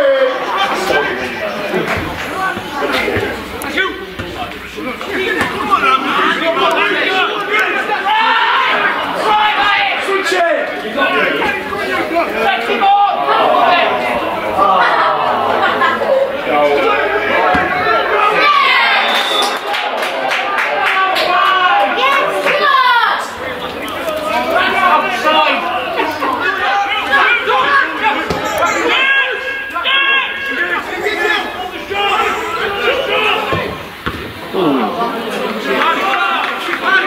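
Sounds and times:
chatter of voices: 0.0s - 37.0s.

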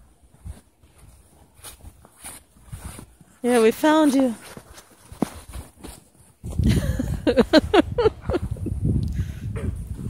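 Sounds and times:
footsteps crunching in snow: 0.0s - 6.8s
thuds in soft snow: 0.3s - 7.4s.

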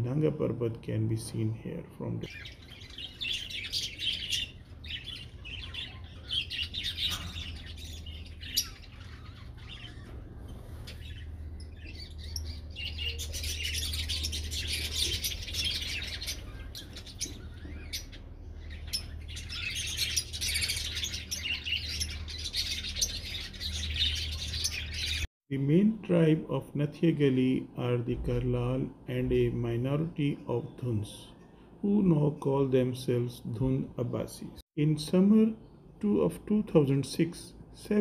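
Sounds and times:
birds chirping and calling: 1.2s - 25.3s.

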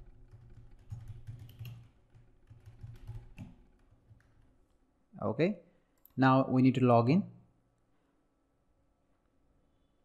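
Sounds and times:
computer keyboard typing: 0.0s - 4.5s.

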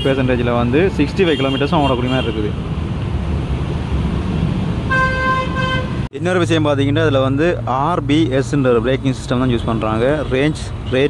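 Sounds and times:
vehicle horn: 4.9s - 6.1s.

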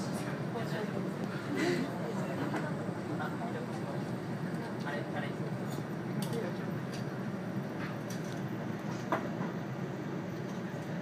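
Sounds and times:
train wheels rumbling on rails: 7.7s - 11.0s.

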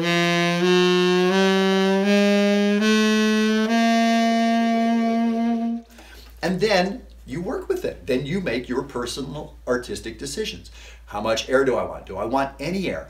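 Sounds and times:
tenor saxophone playing: 0.0s - 6.2s.

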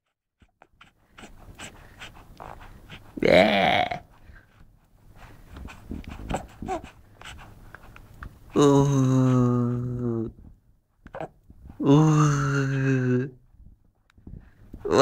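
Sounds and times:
soft mouth noises: 0.4s - 15.0s
person cooing: 3.2s - 4.1s, 8.5s - 10.4s, 11.8s - 13.4s.

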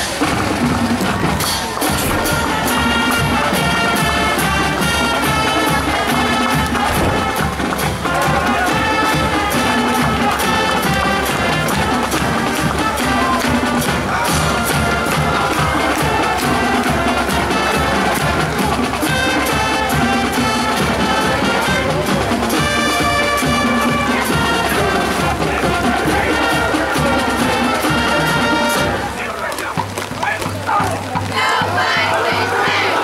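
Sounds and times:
marching band playing: 0.0s - 33.0s.

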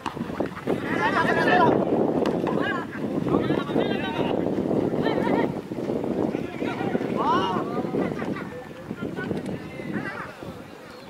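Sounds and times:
crowd chatter and shouting: 0.0s - 11.0s.

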